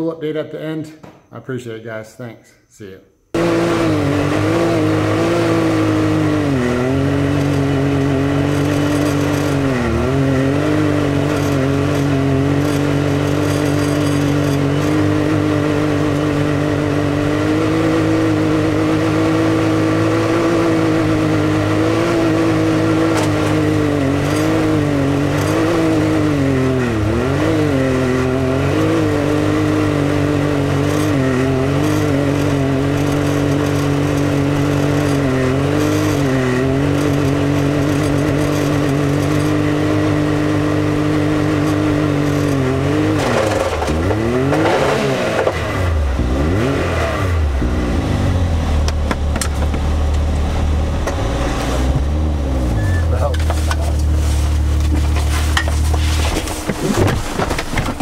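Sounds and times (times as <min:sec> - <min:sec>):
engine revving: 0:03.3 - 0:58.0.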